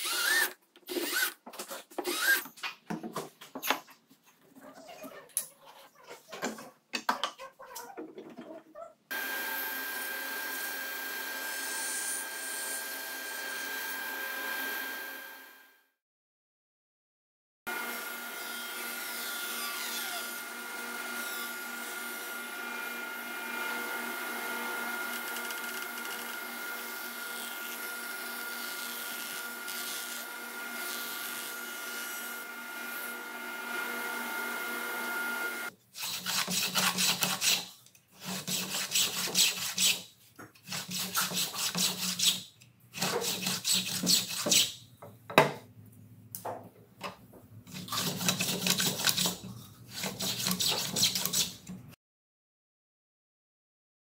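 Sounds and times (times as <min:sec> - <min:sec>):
table saw whining: 0:09.1 - 0:15.8, 0:17.7 - 0:35.7
rasping strokes shaving wood: 0:47.8 - 0:51.6.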